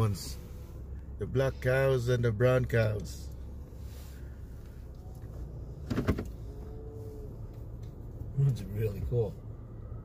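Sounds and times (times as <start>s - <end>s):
vehicle idling rumble: 0.0s - 10.0s.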